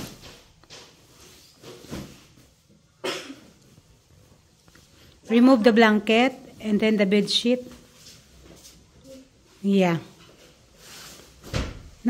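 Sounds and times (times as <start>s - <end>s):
bedding rustling: 0.0s - 3.0s, 6.5s - 12.0s.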